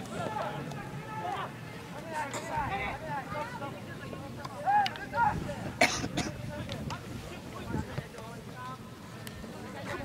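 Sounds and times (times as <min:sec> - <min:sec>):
people shouting calls: 0:00.0 - 0:05.6
person coughing: 0:05.8 - 0:06.3.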